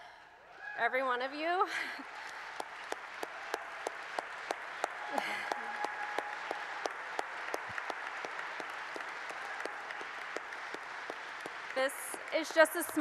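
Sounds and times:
large audience applauding: 1.7 - 13.0
close sharp hand claps: 2.0 - 13.0.

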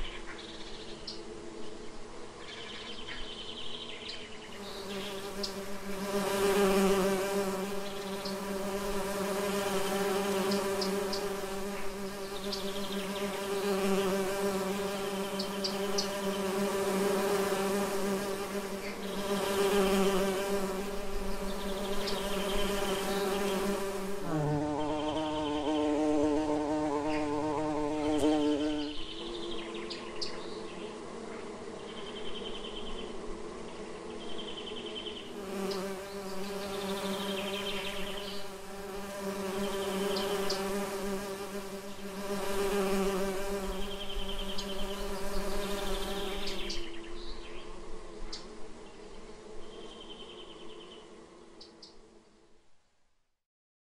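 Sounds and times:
bees buzzing: 0.9 - 52.0.

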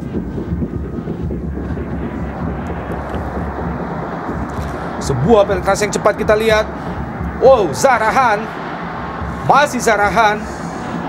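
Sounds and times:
stadium crowd din: 0.0 - 11.0.

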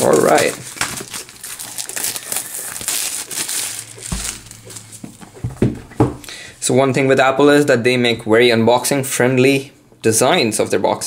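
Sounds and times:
plastic shrink-wrap crinkling: 0.0 - 5.4.

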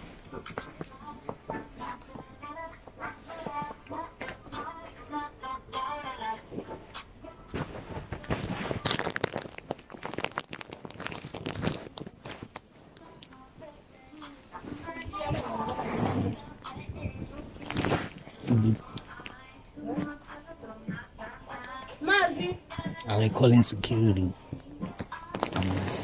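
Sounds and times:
bedding rustling: 0.0 - 21.3, 22.0 - 26.0
faint background music: 0.0 - 26.0.

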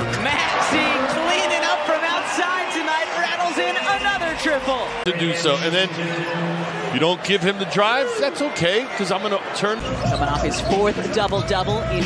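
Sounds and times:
man commentating: 0.0 - 9.8.

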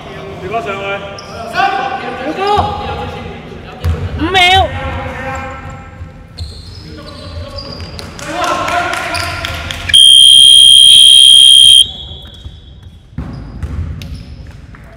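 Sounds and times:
game clock buzzer: 9.9 - 11.8.

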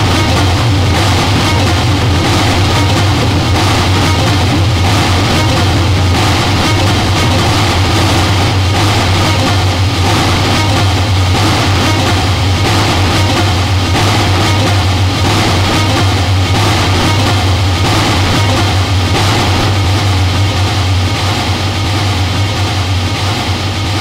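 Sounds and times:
distorted noise music: 0.0 - 24.0
loud steady low hum: 0.0 - 24.0.

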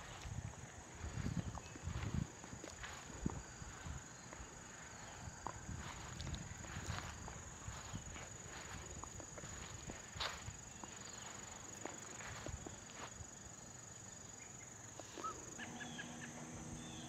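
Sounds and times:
footsteps on grass: 0.0 - 13.5
steady high-pitched tone: 15.2 - 17.0.

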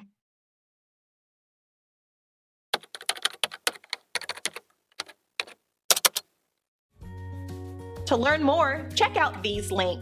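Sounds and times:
keyboard key clicks: 2.8 - 6.3.

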